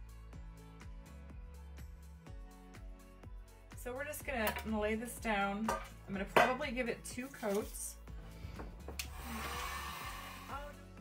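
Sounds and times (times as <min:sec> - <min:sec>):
hot-air blower whooshing: 0:09.0 - 0:10.9.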